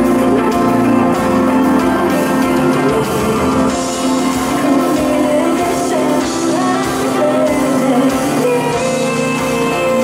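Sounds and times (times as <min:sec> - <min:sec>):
live pop band music: 0:00.0 - 0:10.0.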